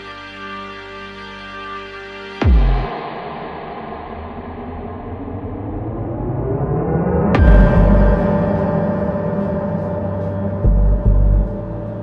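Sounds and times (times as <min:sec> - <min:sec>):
deep bass hit: 0:02.4 - 0:05.8, 0:07.4 - 0:12.0.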